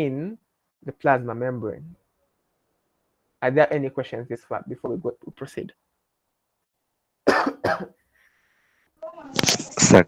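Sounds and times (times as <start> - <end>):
person coughing: 7.3 - 8.0.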